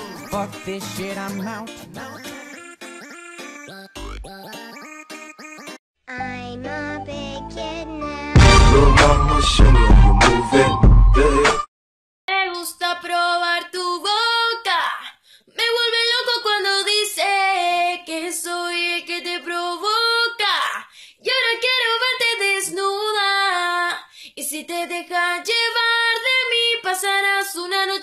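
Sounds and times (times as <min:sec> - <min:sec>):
young woman singing: 0:12.3 - 0:28.0.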